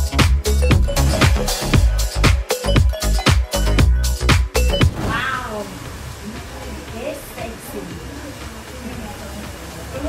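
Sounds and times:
dance music with fast beat: 0:00.0 - 0:04.9
short falling pitched call: 0:04.9 - 0:05.8.

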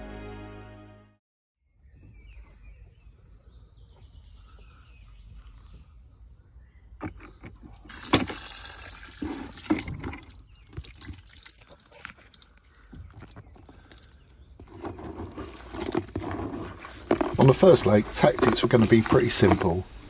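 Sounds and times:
splashing: 0:07.9 - 0:19.8
hand stirring wet mix: 0:07.9 - 0:20.0
liquid and seeds poured into bucket: 0:07.9 - 0:20.0.

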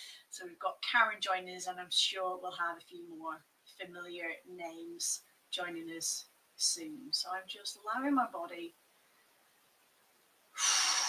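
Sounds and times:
woman breathing out deeply: 0:10.6 - 0:11.0.

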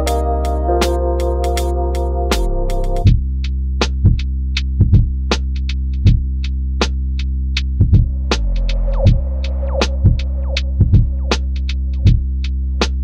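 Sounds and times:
lofi hip hop beat: 0:00.0 - 0:03.2
low bass chord: 0:00.0 - 0:03.2.

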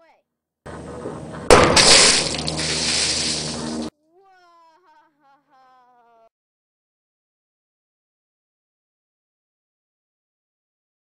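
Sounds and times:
water balloon bursting: 0:01.5 - 0:03.9
water splashing on metal mesh: 0:01.5 - 0:03.9.

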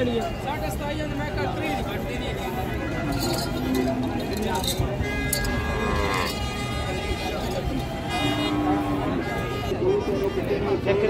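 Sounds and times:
metallic or glassy clinks: 0:03.0 - 0:05.5.

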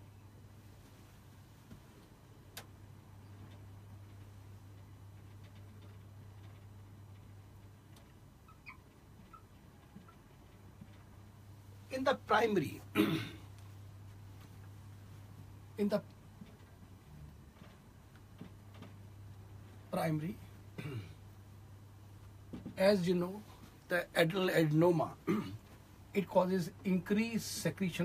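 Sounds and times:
steady low hum: 0:00.0 - 0:28.0.

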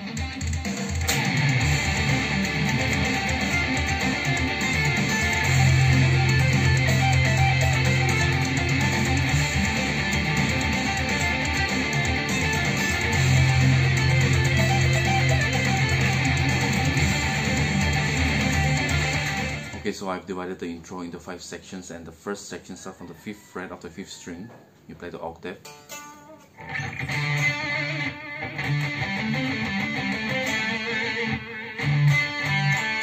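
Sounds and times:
electric guitar melody: 0:00.0 - 0:19.9, 0:25.6 - 0:33.0.

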